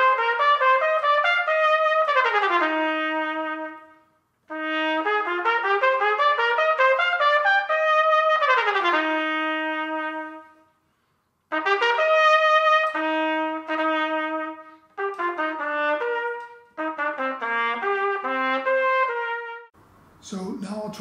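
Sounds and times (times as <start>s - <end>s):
solo trumpet: 0.0s - 19.8s.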